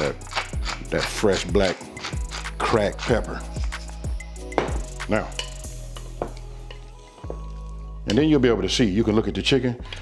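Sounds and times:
background music: 0:00.0 - 0:10.0
wooden spoon knocking glass bowl: 0:04.5 - 0:06.4.

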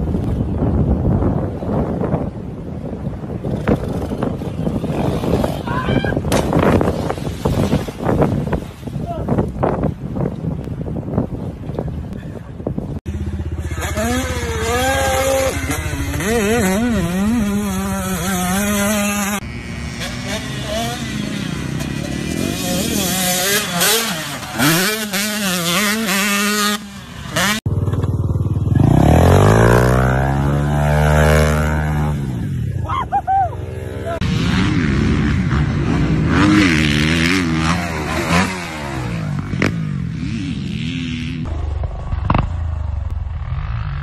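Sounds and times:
dirt bike engines revving: 0:00.1 - 0:44.0.

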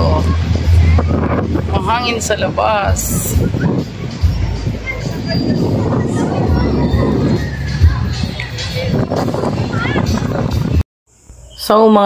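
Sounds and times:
wind buffeting microphone: 0:00.0 - 0:10.8.

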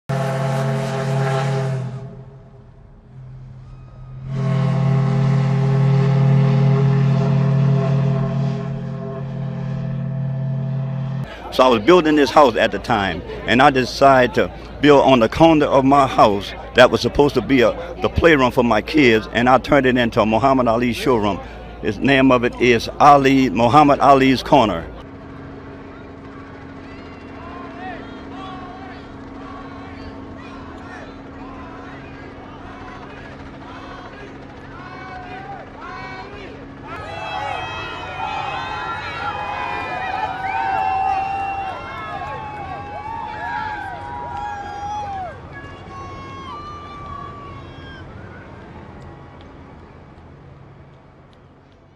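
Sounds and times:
deep steam whistle blasts: 0:00.1 - 0:11.6
vehicle engines humming: 0:00.1 - 0:51.9
distant crowd shouting: 0:11.2 - 0:50.0.

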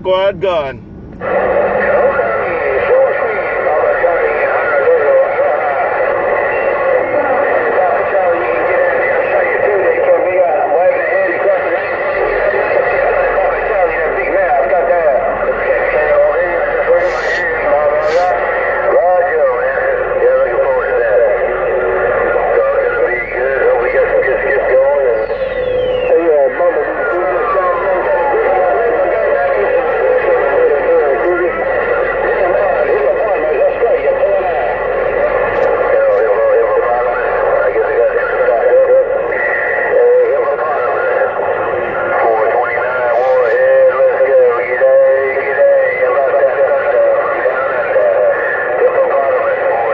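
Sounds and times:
garbled radio voices: 0:00.0 - 0:49.9
radio static: 0:00.0 - 0:49.9.

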